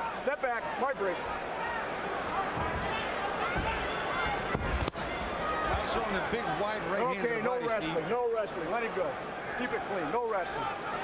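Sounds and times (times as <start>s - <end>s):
crowd hum of many voices: 0.0s - 11.0s.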